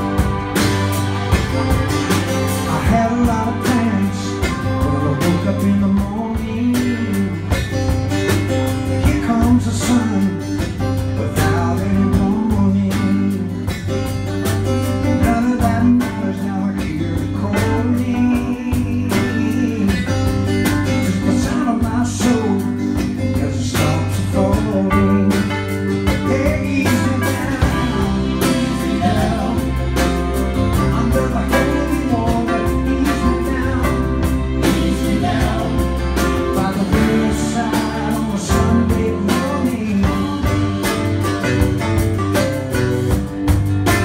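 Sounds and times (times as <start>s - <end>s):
violins: 0.0s - 7.4s, 27.0s - 39.3s
strummed acoustic guitar: 0.0s - 44.0s
man singing: 2.1s - 14.2s, 14.8s - 42.0s.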